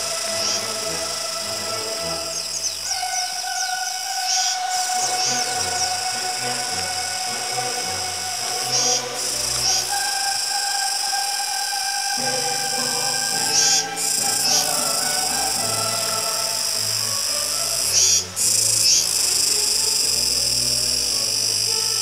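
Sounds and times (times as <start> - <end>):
cicada buzzing: 0.0 - 22.0.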